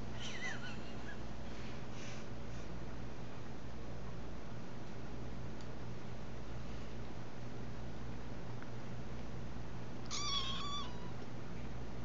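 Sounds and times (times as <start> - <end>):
kitten mewing: 10.1 - 11.1.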